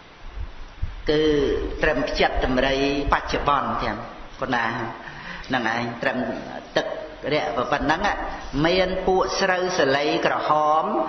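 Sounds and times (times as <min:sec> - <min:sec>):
man chanting: 0:01.0 - 0:11.0.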